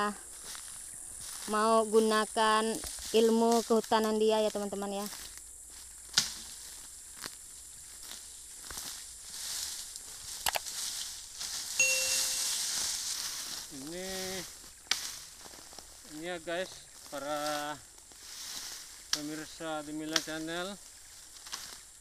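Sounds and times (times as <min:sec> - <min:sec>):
dry fern stalks rustling: 0:00.3 - 0:01.8, 0:02.4 - 0:22.0
stems cracking: 0:06.1 - 0:06.6, 0:09.8 - 0:11.1, 0:14.8 - 0:15.8, 0:20.1 - 0:20.4, 0:21.3 - 0:21.8.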